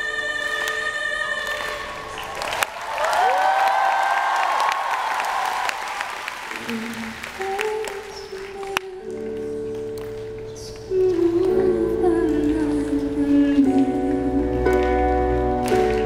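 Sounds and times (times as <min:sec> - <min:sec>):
audience applauding and cheering: 0:01.5 - 0:08.8, 0:14.7 - 0:16.0
soft song with low notes: 0:06.7 - 0:16.0.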